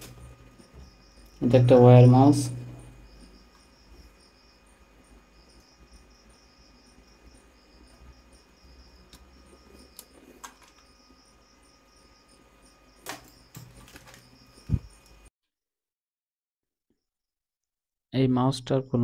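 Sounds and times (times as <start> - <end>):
insect chirping: 0.0 - 15.3.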